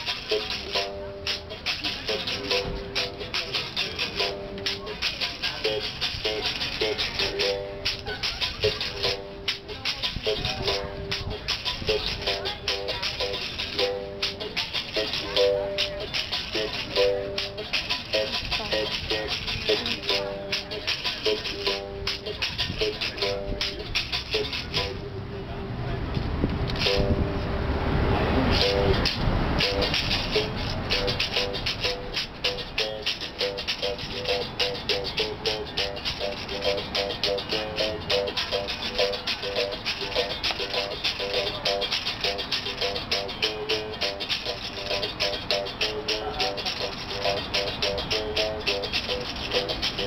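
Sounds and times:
berimbau playing: 0.0 - 25.2, 26.7 - 50.0.

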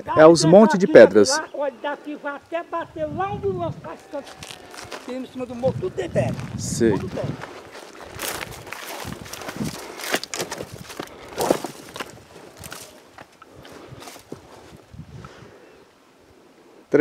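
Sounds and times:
footsteps through dry brush: 3.9 - 15.2.

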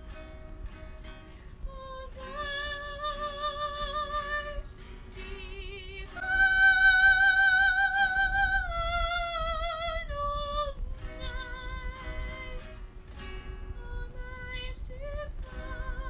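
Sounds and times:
strummed acoustic guitar: 0.0 - 16.0
woman singing with vibrato: 1.5 - 12.9, 13.7 - 16.0.

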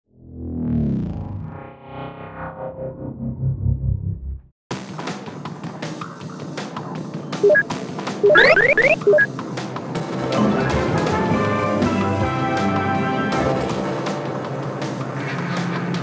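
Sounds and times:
short electronic beeps: 7.4 - 7.6, 8.2 - 9.3.

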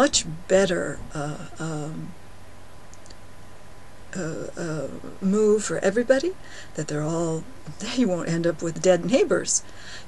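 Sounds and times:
low room hum and hiss: 0.0 - 10.0
faint small clicks: 2.9 - 3.2.

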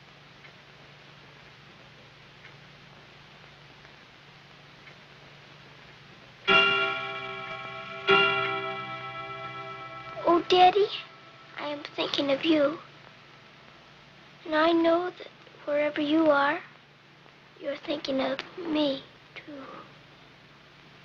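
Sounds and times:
clock bell strokes: 6.5 - 11.9
clock ticking: 6.5 - 12.5.

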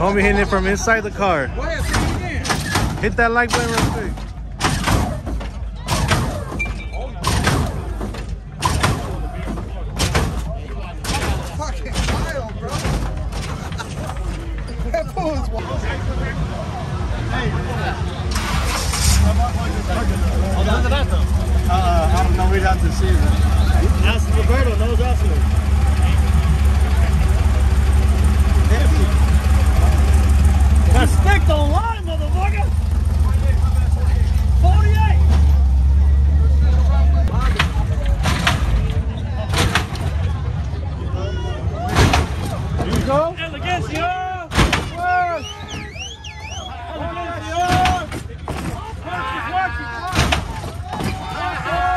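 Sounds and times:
car engine droning: 0.0 - 49.7
sharp bangs: 1.7 - 14.2, 41.9 - 43.3
crowd shouting: 4.4 - 11.6, 19.8 - 25.0, 25.6 - 32.7, 38.8 - 51.9.

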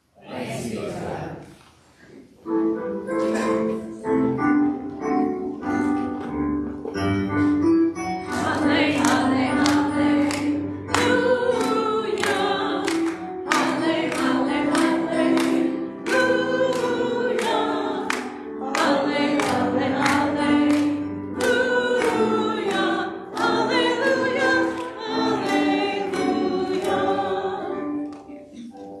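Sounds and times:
group of voices singing: 0.2 - 1.6, 8.2 - 28.1
hands clapping in time: 8.3 - 22.3.

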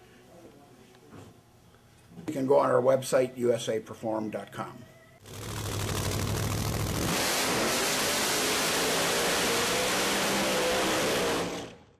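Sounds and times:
engine rumbling and revving: 5.2 - 11.8.

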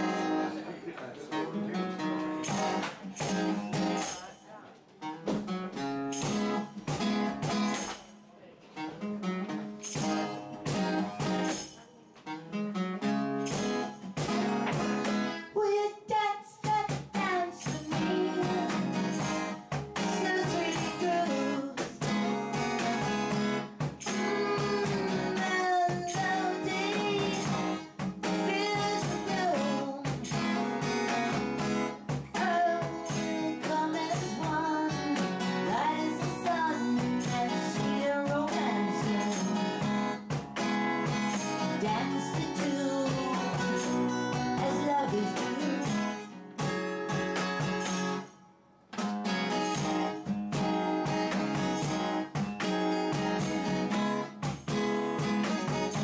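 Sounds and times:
strummed acoustic guitar: 0.0 - 56.0
woman singing: 15.3 - 22.1, 24.0 - 30.4, 32.3 - 40.0, 41.6 - 46.3.

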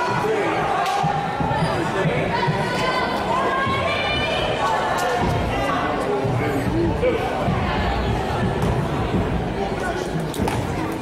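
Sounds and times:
crowd voices echoing: 0.0 - 11.0.

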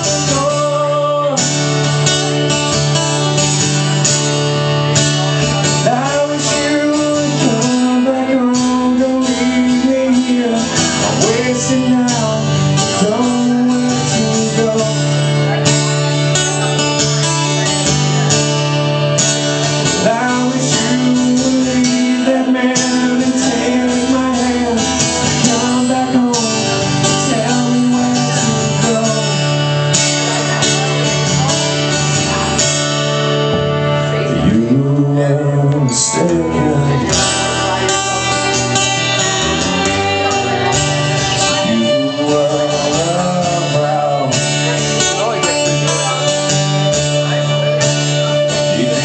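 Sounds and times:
man singing: 0.0 - 49.0.

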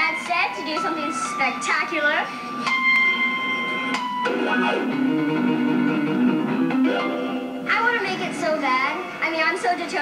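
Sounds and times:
electronic keyboard music: 0.0 - 9.2.

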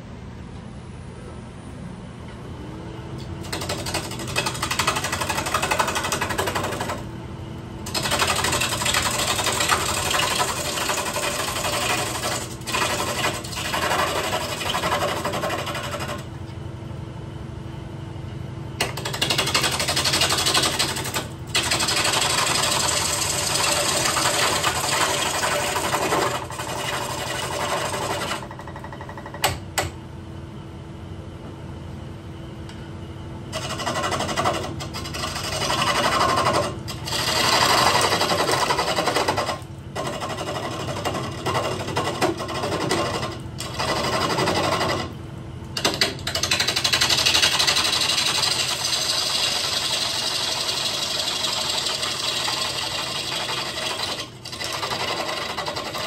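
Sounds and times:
gouge scraping spinning wood: 3.4 - 7.1, 7.8 - 16.3, 18.8 - 28.9, 33.5 - 45.2, 45.8 - 56.0
lathe motor hum: 7.8 - 16.3, 18.8 - 28.9, 33.5 - 45.1, 45.8 - 56.0.

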